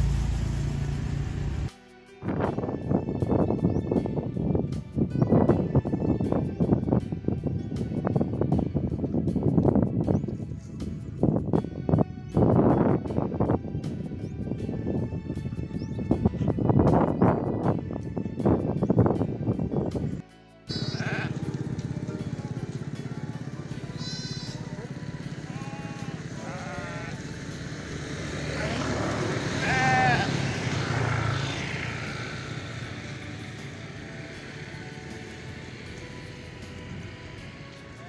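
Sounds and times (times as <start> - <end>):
background music: 1.5 - 38.0
sheep bleating: 20.7 - 21.9, 22.8 - 27.3, 28.5 - 31.6.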